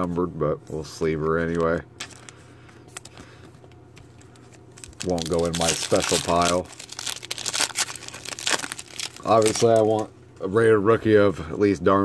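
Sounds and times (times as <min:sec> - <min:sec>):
foil wrapper crinkling and tearing: 0:01.3 - 0:03.2, 0:04.2 - 0:10.0.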